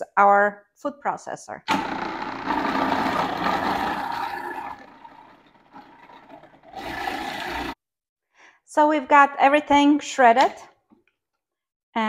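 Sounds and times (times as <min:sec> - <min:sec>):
food processor motor whine: 0:01.7 - 0:07.8.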